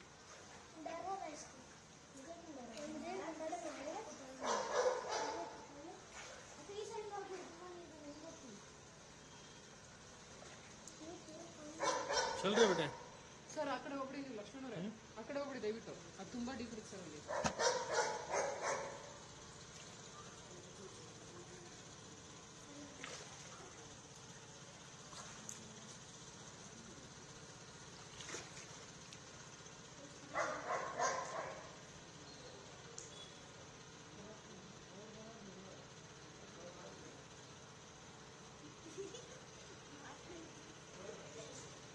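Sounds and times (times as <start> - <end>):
outdoor background hiss: 0.0 - 41.9.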